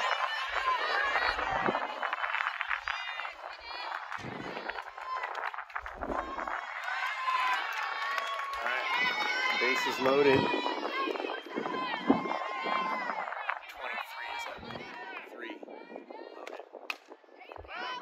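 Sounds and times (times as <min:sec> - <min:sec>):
young voices cheering: 0:00.0 - 0:16.1.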